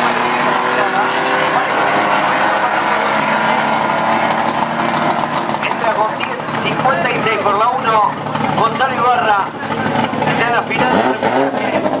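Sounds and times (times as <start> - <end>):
car engines running: 0.0 - 12.0
indistinct talking voices: 0.4 - 11.9.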